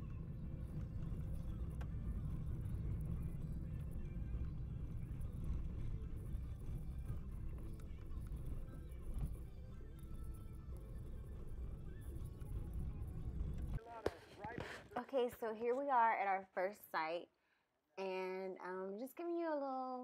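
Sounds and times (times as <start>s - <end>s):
vehicle driving rumble: 0.0s - 13.8s.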